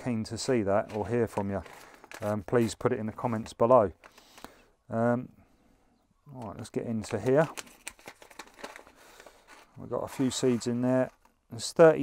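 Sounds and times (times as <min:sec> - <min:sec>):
paper packet rustling: 0:00.0 - 0:04.5, 0:06.4 - 0:11.5
faint crackles: 0:00.0 - 0:04.7, 0:06.3 - 0:11.7.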